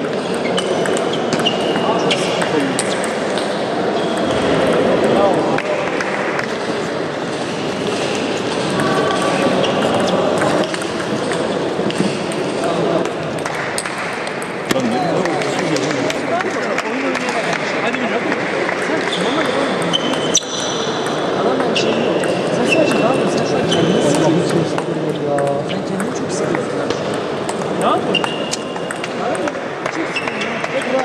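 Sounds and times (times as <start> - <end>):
voices in a large hall: 0.0 - 31.0
table tennis ball clicking: 25.4 - 31.0.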